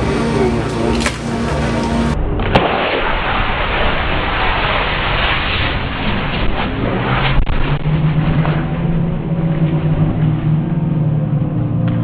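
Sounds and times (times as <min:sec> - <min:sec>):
fireworks rushing noise: 0:00.0 - 0:10.9
low steady hum: 0:00.0 - 0:12.0
sharp crack: 0:00.6 - 0:10.3.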